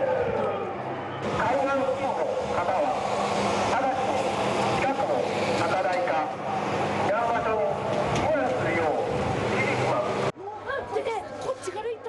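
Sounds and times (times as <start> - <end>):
announcement over loudspeakers: 0.0 - 10.3.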